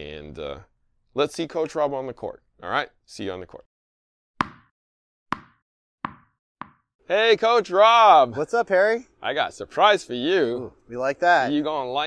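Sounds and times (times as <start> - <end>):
tennis ball bouncing: 4.4 - 4.7, 5.3 - 6.9.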